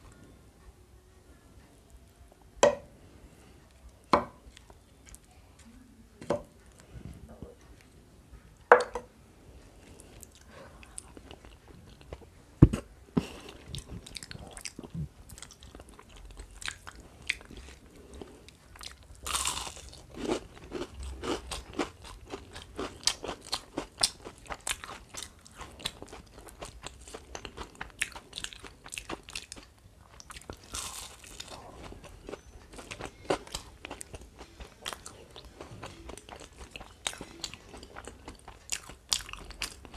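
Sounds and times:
chewing and crunching fried food: 0:03.6 - 0:05.8, 0:09.7 - 0:39.9.

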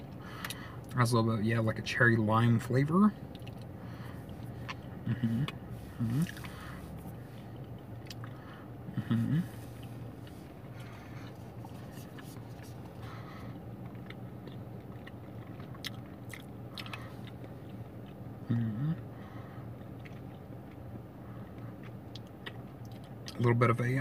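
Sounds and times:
wet mouth chewing clicks: 0:03.2 - 0:07.0, 0:07.6 - 0:08.4, 0:13.8 - 0:18.2, 0:19.8 - 0:20.8, 0:21.8 - 0:23.4
person humming: 0:05.1 - 0:06.5, 0:08.9 - 0:09.8, 0:18.4 - 0:19.0.

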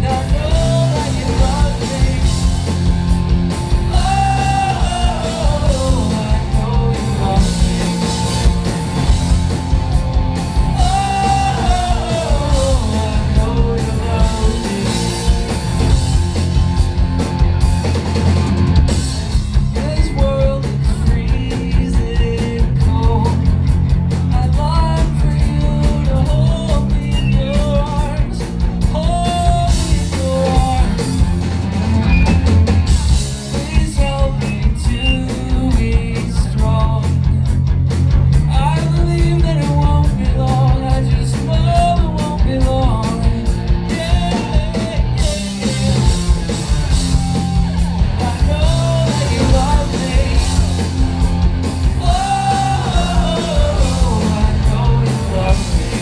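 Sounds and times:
man singing lead vocal: 0:00.0 - 0:02.6, 0:03.8 - 0:08.6, 0:10.6 - 0:15.5, 0:19.7 - 0:23.6, 0:24.3 - 0:31.2, 0:33.4 - 0:37.6, 0:38.4 - 0:46.1, 0:48.2 - 0:51.0, 0:51.8 - 0:56.0
live rock band playing: 0:00.0 - 0:56.0.

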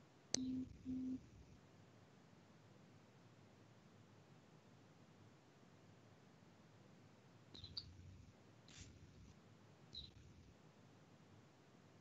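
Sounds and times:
click: 0:00.3 - 0:00.7.

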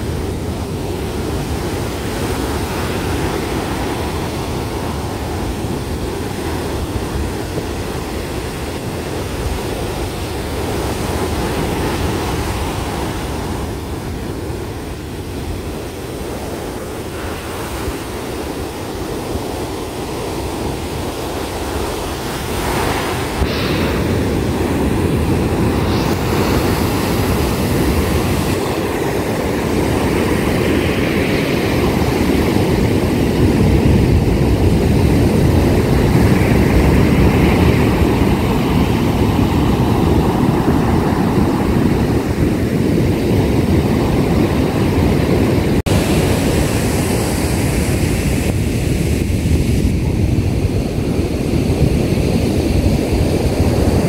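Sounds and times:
ocean surf breaking on sand: 0:00.0 - 0:54.0.

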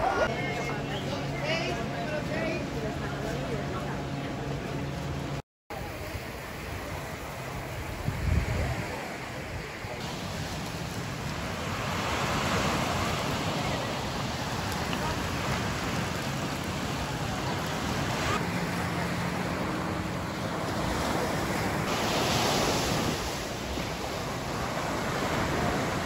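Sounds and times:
faint voices: 0:00.0 - 0:26.0
small waves breaking on sand: 0:05.7 - 0:26.0
wind on microphone: 0:05.8 - 0:18.5.

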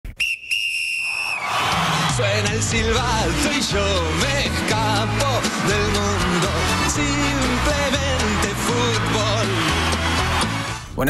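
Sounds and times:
referee's whistle blasts: 0:00.1 - 0:01.5
music: 0:01.6 - 0:11.0.

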